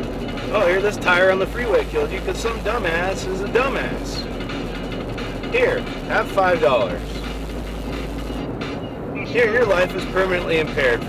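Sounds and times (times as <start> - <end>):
deep rumble: 0.0 - 11.0
road and tyre noise: 0.0 - 11.0.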